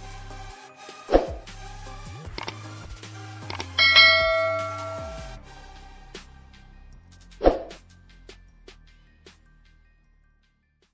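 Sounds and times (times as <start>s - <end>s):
low music bed: 3.5s - 6.0s
bright bell ding: 3.8s - 5.4s.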